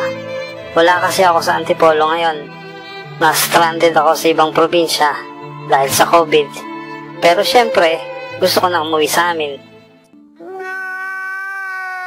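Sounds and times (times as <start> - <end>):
man wailing: 10.4 - 12.0.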